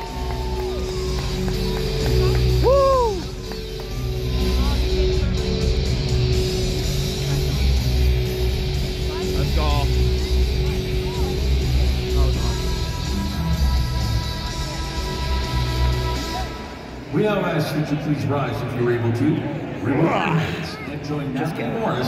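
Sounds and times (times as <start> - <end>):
crowd cheering and clapping: 0.0 - 5.0
arena music with pulsing bass: 0.0 - 17.0.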